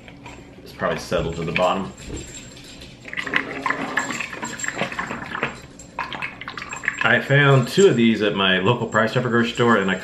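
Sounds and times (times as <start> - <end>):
liquid sloshing in plastic bottle: 3.0 - 7.6.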